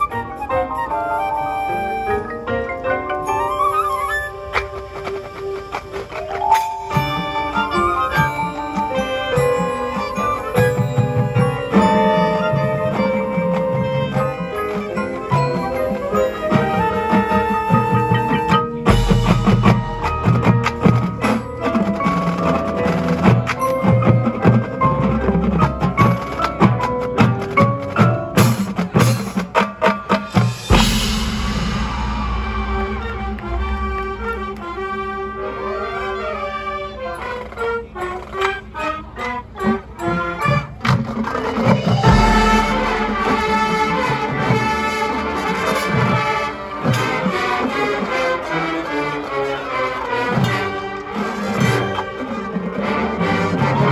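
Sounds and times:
marimbas and mallet percussion: 0.0 - 33.8, 39.6 - 44.6
marching band music: 0.0 - 53.9
deep bass swells: 30.7 - 35.6.

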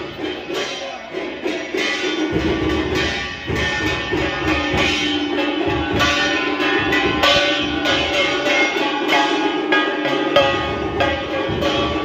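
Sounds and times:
music: 0.0 - 12.0
temple bells ringing: 0.0 - 12.0.

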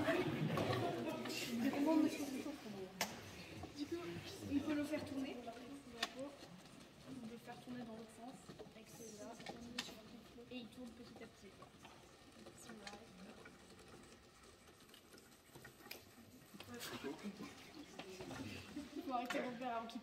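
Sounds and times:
small clicks and taps: 5.5 - 16.8.

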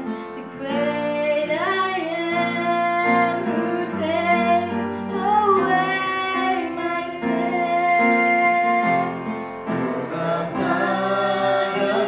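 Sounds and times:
girl singing a hymn: 0.4 - 9.2.

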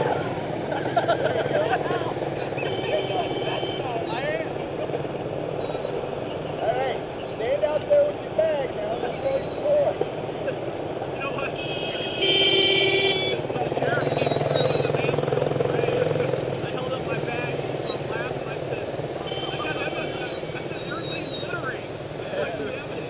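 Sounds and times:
spectators' voices: 0.0 - 11.8, 13.4 - 23.0
motorcycle engine running: 0.0 - 23.0.

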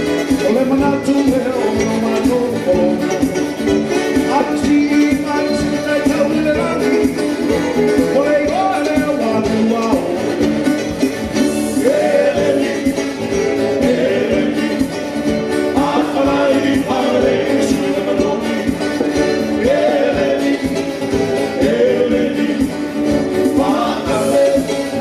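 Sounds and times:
acoustic-electric guitar: 0.0 - 25.0
keyboards: 0.0 - 25.0
man singing: 0.0 - 25.0
steady beat: 0.0 - 25.0.

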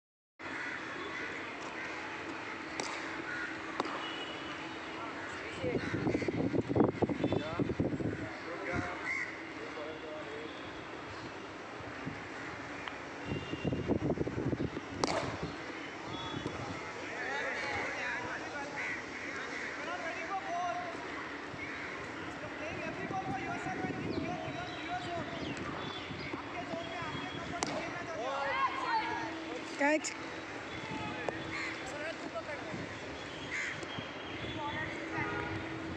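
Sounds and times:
open-air background noise: 0.4 - 35.9
voices chattering: 0.5 - 35.9
cricket bat striking ball: 2.8 - 3.0, 3.8 - 4.0, 15.0 - 15.4, 27.6 - 28.0.

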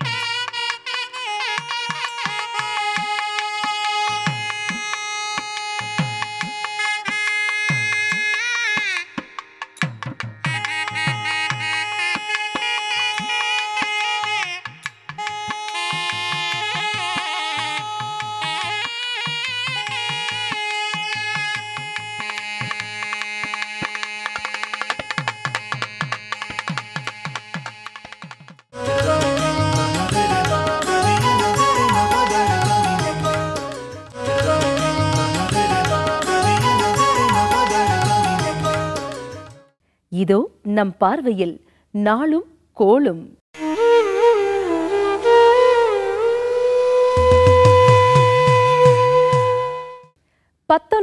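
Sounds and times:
double-reed wind instruments melody: 0.0 - 9.7, 10.4 - 27.7, 28.8 - 39.7, 43.6 - 50.2
drum strokes: 18.2 - 39.6, 47.2 - 49.9.

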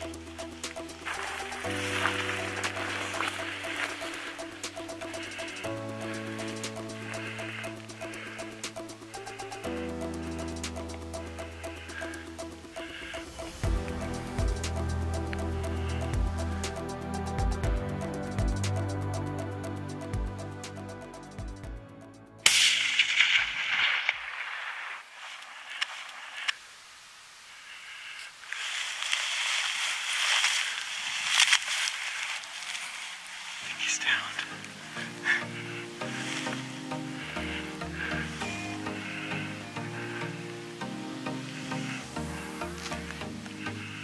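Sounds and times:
background music: 0.0 - 23.3, 33.6 - 44.0
rustling: 0.8 - 9.4, 22.8 - 39.5
wind: 22.4 - 44.0.

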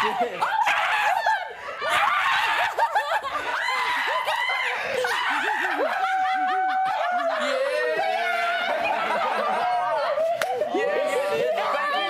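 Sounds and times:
people laughing and squealing: 0.0 - 12.0.

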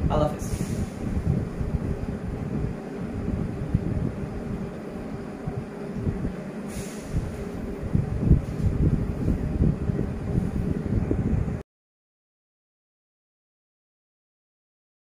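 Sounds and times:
low uneven rumble: 0.0 - 11.6
brief hiss: 0.4 - 1.0, 6.6 - 7.6.

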